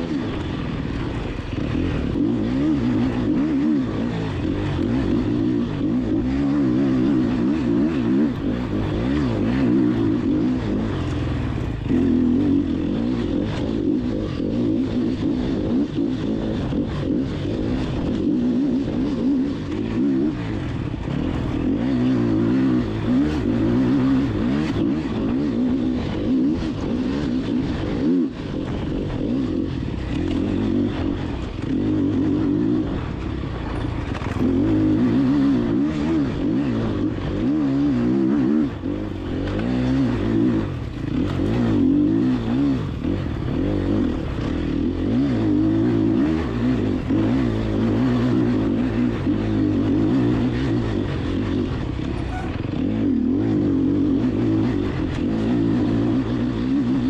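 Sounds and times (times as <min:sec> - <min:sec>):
motorcycle engine under load: 0:00.0 - 0:57.0.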